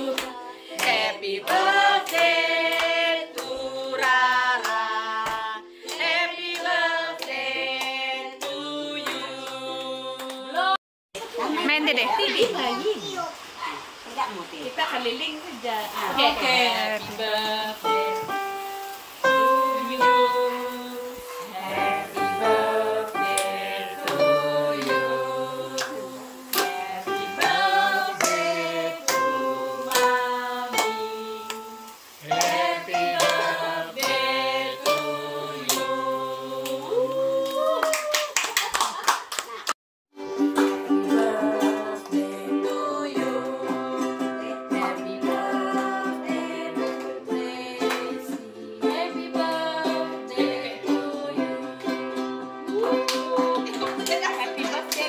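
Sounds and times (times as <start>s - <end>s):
group singing: 0.0s - 10.8s, 16.0s - 18.5s, 19.2s - 37.8s, 40.5s - 55.0s
people clapping: 0.0s - 10.8s, 21.1s - 39.8s, 40.4s - 42.3s, 44.7s - 46.0s, 46.7s - 48.4s, 52.7s - 55.0s
ukuleles strummed: 19.3s - 36.9s, 40.2s - 55.0s.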